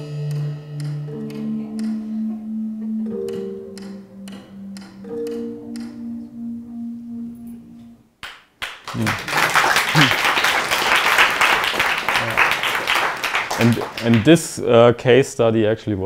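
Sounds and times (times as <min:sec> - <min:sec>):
mallet percussion notes: 0:00.0 - 0:07.6
audience applause: 0:08.6 - 0:14.4.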